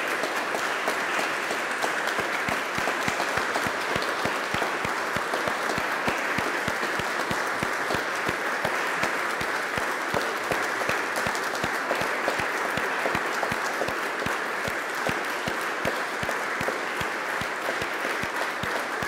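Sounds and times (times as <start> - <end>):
congregation applauding: 0.0 - 19.0.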